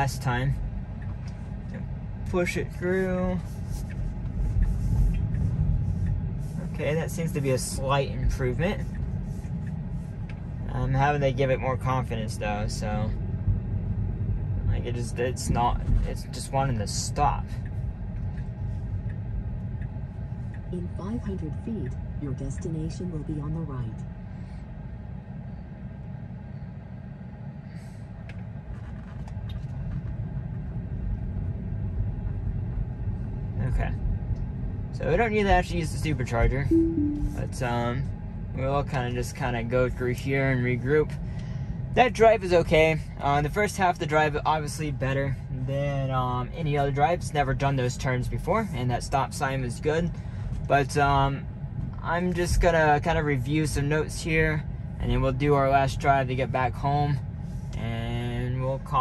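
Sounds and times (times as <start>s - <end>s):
road rumble inside car: 0.0s - 59.0s.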